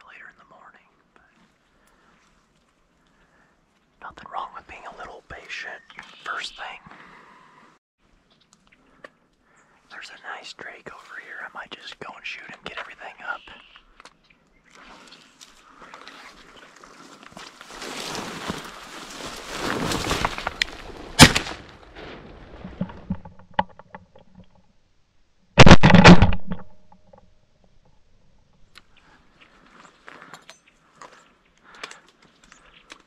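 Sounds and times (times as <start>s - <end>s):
shotgun shots: 21.1s - 21.7s.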